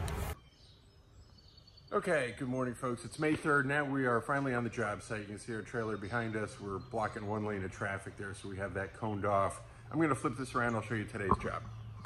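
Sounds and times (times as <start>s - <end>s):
distant bird chirps: 0.2s - 12.0s.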